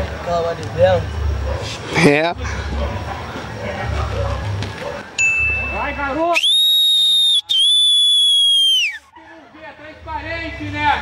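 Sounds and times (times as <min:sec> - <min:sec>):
faint voices: 0:00.0 - 0:06.4
shrill whistle: 0:06.3 - 0:09.1.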